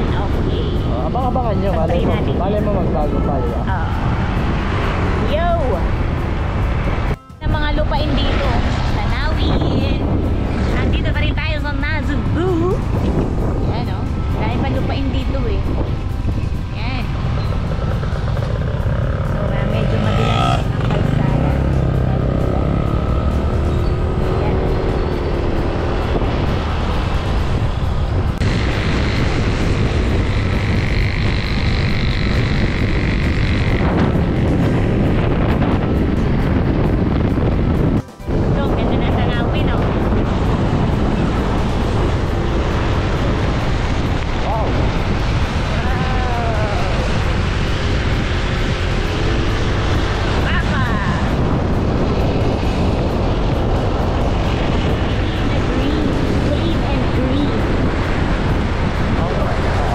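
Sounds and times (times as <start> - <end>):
motorcycle running: 0.0 - 59.9
wind over microphone: 0.0 - 59.9.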